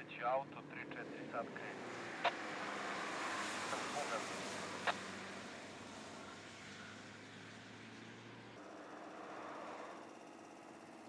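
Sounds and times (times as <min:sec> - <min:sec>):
car driving past: 0:00.6 - 0:11.0.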